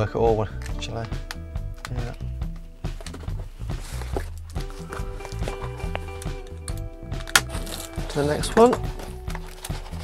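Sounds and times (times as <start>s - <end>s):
background music with held notes: 0.0s - 10.0s
sharp crack: 6.3s - 8.3s.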